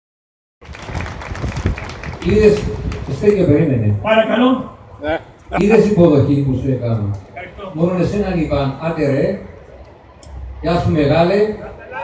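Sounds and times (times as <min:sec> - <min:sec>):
audience clapping: 0:00.6 - 0:03.2
crowd noise: 0:00.6 - 0:12.0.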